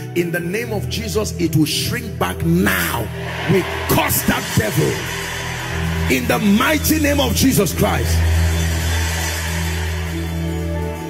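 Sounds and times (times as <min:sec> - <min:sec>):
person preaching: 0:00.0 - 0:05.1, 0:06.1 - 0:08.2
low keyboard drone: 0:00.4 - 0:11.0.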